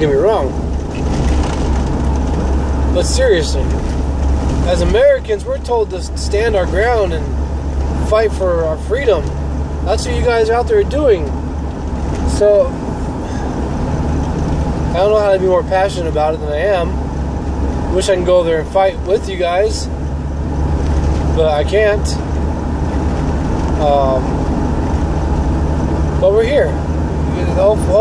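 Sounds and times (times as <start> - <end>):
vehicle road and engine noise: 0.0 - 28.0.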